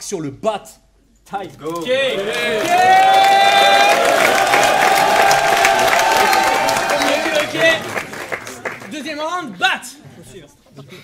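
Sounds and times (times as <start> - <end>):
people clapping: 1.7 - 9.6
crowd cheering and shouting: 1.9 - 8.1
long held shout: 2.0 - 7.8.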